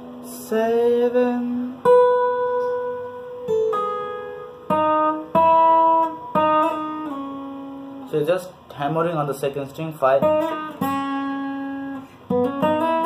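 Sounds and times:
acoustic guitar slow melody: 0.0s - 8.8s, 10.1s - 13.0s.

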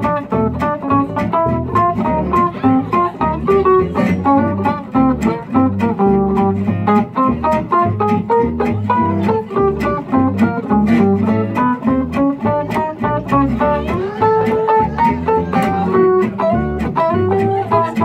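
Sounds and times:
acoustic guitars strumming: 0.0s - 18.0s
plucked double bass: 0.0s - 18.0s.

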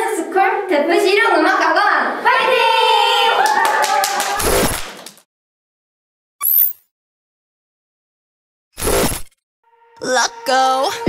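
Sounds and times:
girls shouting a cheer: 2.2s - 4.4s.

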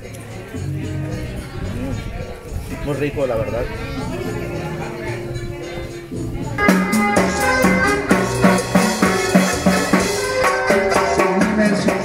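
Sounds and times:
keyboard bass and chords: 0.0s - 12.0s
latin dance music: 0.0s - 12.0s.

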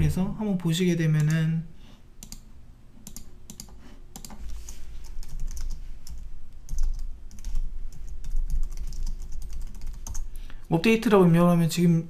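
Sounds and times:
typing on computer keyboard: 2.2s - 2.4s, 3.0s - 4.4s, 5.1s - 10.3s.

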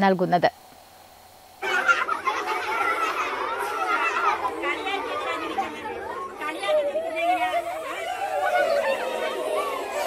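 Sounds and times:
children chattering: 1.6s - 10.0s.

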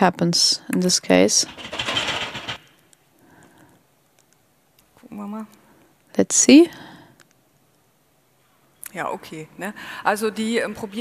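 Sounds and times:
handling noise rustle: 1.3s - 2.9s.

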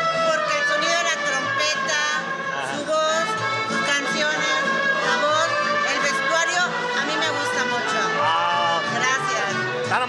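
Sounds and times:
mariachi band playing: 0.0s - 10.0s.

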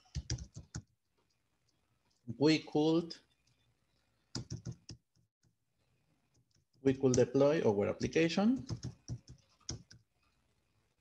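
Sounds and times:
typing on computer keyboard: 0.0s - 0.9s, 4.3s - 5.0s, 8.6s - 10.0s.

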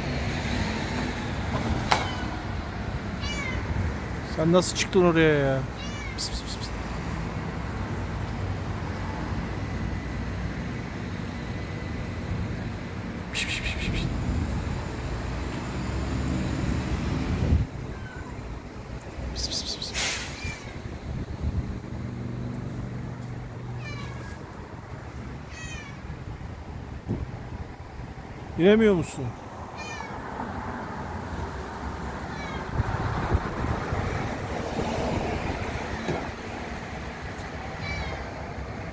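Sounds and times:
cat meowing: 2.0s - 2.4s, 3.2s - 3.8s, 5.7s - 6.8s, 17.8s - 18.5s, 19.5s - 20.8s, 23.8s - 24.5s, 25.5s - 26.1s, 29.8s - 30.2s, 32.2s - 32.8s, 37.8s - 38.3s.

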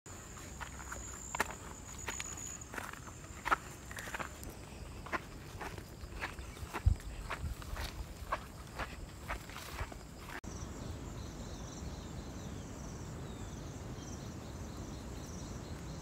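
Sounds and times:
footsteps on rough ground: 0.1s - 10.5s.

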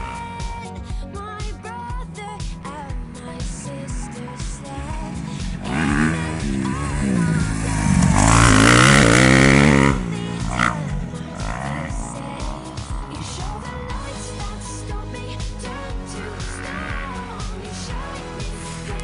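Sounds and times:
background music: 0.0s - 19.0s
motocross bike engine revving: 2.9s - 19.0s.

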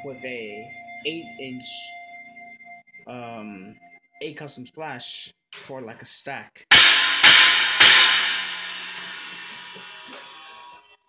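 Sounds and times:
stacked cymbals struck with drumstick: 6.7s - 10.2s.

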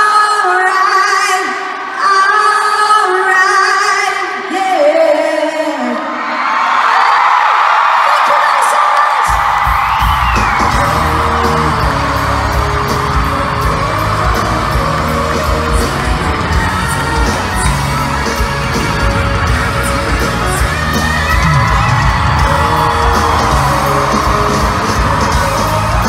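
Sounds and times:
crowd cheering and screaming: 5.6s - 26.0s
loud music with heavy bass beat: 9.4s - 26.0s.

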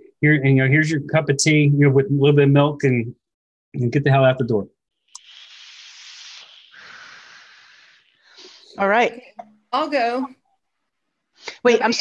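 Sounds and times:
exhale hiss: 5.0s - 8.8s
vape inhale hiss: 5.0s - 8.8s.

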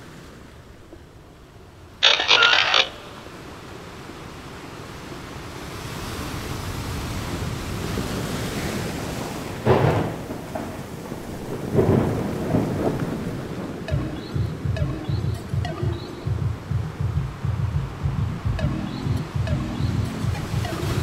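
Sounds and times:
rain hiss: 2.0s - 14.7s
thunder rolling: 9.6s - 21.0s
low pulsing beat: 13.9s - 21.0s.

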